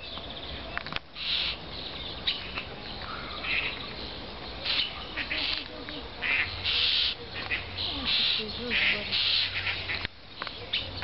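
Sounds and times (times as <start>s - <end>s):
faint low bird calls: 0.0s - 11.0s
bird harsh hissing calls: 1.1s - 4.0s, 4.6s - 10.1s.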